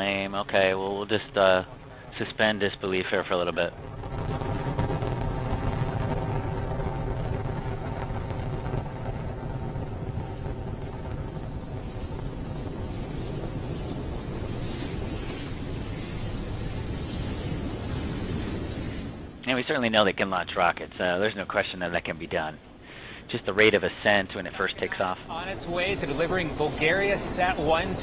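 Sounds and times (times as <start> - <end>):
rocket engines low rumble: 0.0 - 28.0.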